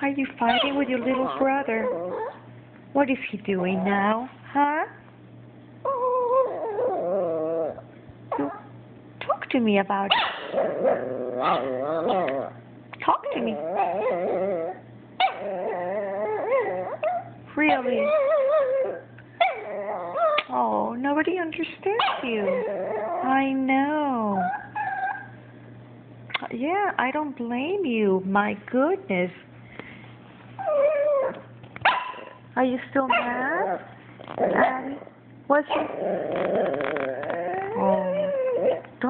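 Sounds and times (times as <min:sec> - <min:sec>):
small dog whining and grumbling: 0:00.4 - 0:02.5, 0:05.8 - 0:08.8, 0:10.4 - 0:20.8, 0:22.4 - 0:23.5, 0:24.2 - 0:25.4, 0:30.6 - 0:31.5, 0:33.1 - 0:35.1, 0:35.7 - 0:39.0.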